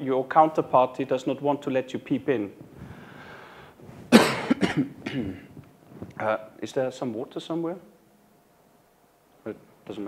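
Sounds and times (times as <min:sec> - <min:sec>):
man coughing: 0:04.1 - 0:05.6.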